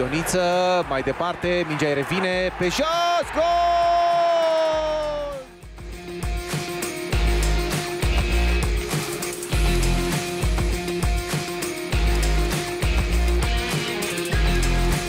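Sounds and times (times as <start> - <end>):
commentator shouting: 0.0 - 5.5
music with heavy bass beat: 5.0 - 15.0.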